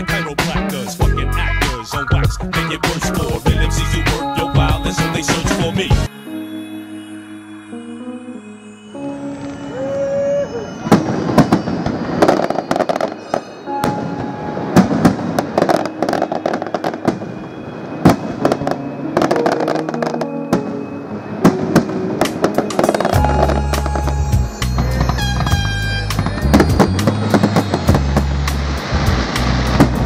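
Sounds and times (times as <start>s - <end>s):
deep bass line: 0.0s - 6.1s, 23.2s - 30.0s
music playing: 0.0s - 17.2s, 18.0s - 30.0s
fireworks bursting and crackling: 9.0s - 30.0s.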